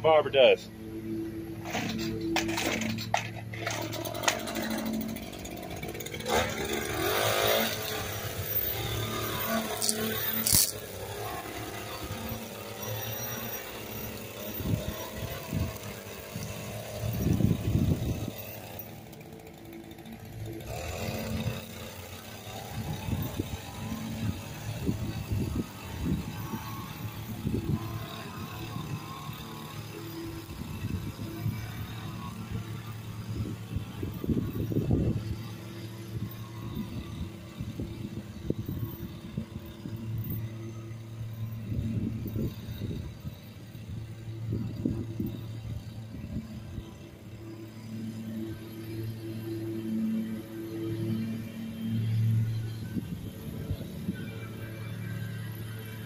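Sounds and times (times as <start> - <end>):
edger two-stroke engine running: 0.0 - 56.0.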